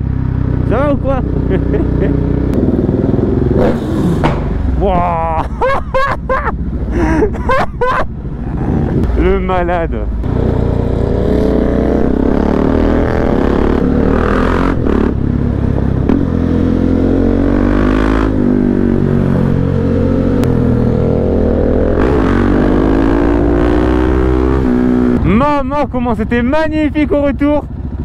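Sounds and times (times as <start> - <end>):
motorcycle engine revving: 0.0 - 5.4, 8.1 - 26.5, 27.1 - 28.0.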